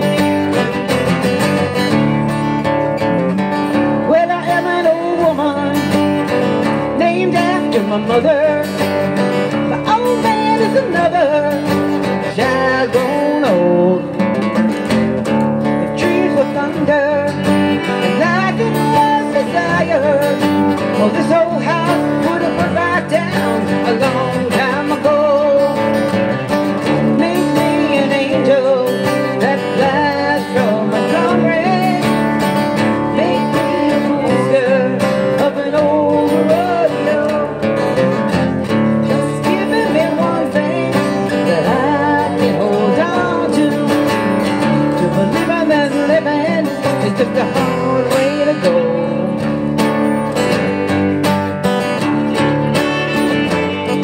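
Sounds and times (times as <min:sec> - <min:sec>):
bass: 0:00.0 - 0:54.0
strummed acoustic guitar: 0:00.0 - 0:54.0.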